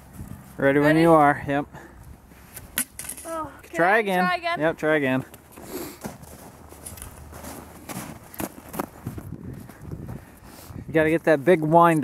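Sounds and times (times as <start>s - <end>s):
footsteps in snow: 5.9s - 10.8s.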